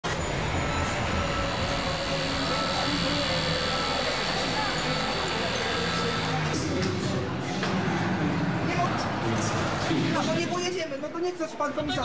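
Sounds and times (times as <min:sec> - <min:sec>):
engine running: 0:00.1 - 0:06.6
indistinct voices: 0:00.1 - 0:10.4.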